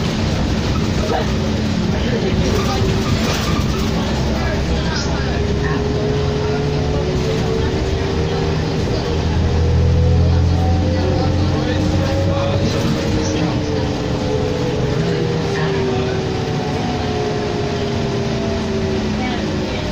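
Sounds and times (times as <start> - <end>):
bus engine drone: 0.0 - 19.9.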